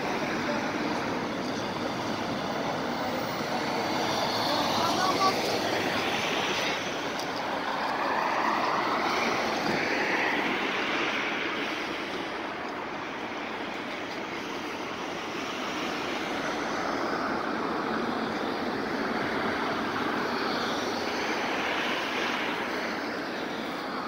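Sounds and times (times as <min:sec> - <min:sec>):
street and traffic noise: 0:00.0 - 0:24.0
tram electric traction whine: 0:00.0 - 0:24.0.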